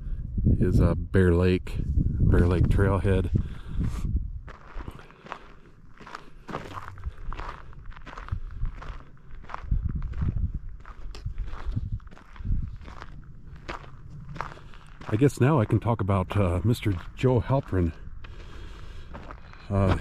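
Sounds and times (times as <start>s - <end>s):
footsteps on hard trail: 2.3s - 20.0s.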